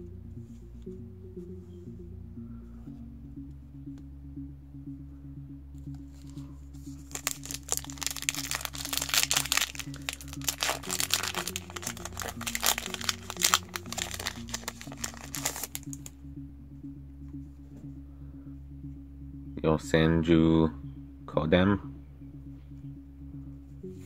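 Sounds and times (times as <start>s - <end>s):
background music: 0.0s - 24.0s
foil pack crinkling and tearing: 7.0s - 16.1s.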